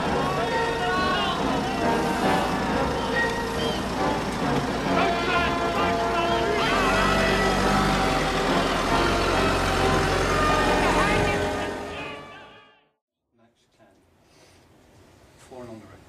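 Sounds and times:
voices talking over one another: 0.0s - 12.7s.

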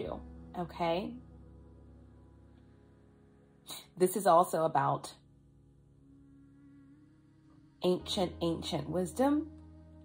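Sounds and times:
faint humming drone: 0.0s - 10.0s.

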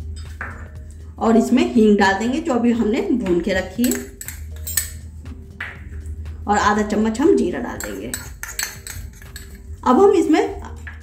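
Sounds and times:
metal spoon clinking on bowl: 3.7s - 5.0s, 7.7s - 9.8s.

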